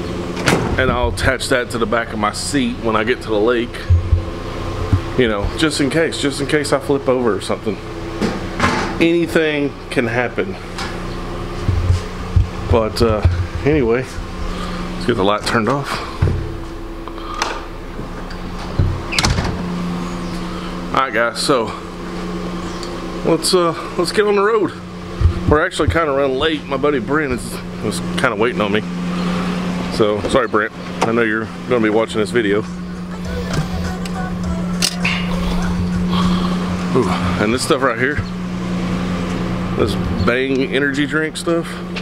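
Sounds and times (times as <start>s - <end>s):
steady mechanical hum: 0.0s - 42.0s
dull knocks: 25.1s - 26.1s
background music: 32.7s - 36.6s.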